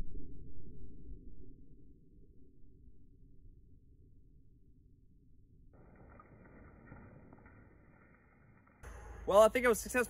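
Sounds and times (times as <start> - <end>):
faint low rumbling noise: 8.8 - 10.0.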